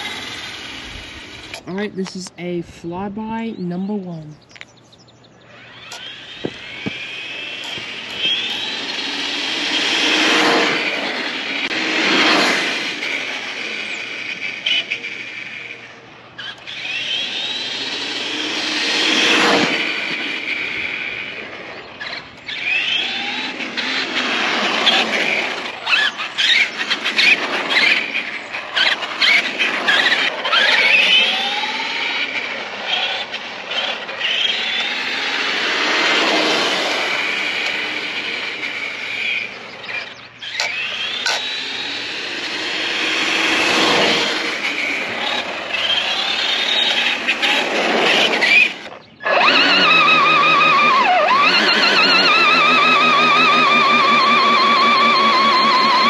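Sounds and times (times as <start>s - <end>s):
toy truck electric motor whining: 0.0s - 1.7s, 5.2s - 56.0s.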